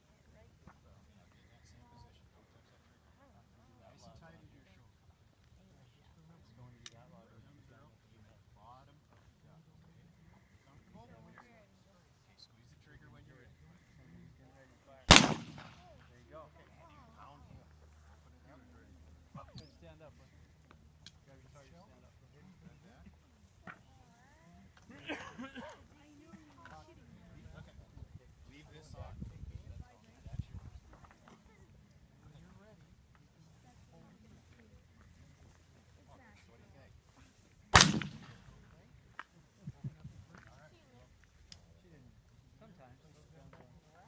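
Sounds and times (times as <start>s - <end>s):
shotgun shot: 15.1s - 15.9s, 37.8s - 38.5s.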